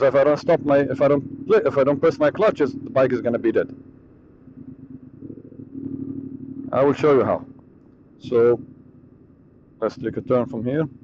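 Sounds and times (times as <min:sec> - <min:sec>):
motorcycle engine low rumble: 0:00.0 - 0:11.0.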